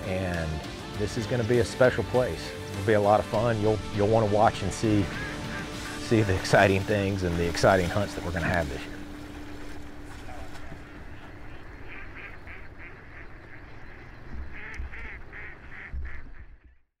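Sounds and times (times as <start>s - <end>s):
ducks quacking: 1.0s - 16.8s.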